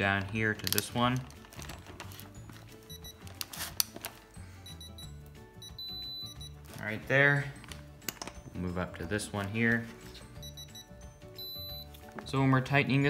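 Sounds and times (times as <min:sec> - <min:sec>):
long steady beep: 0:04.6 - 0:06.6, 0:10.4 - 0:11.9.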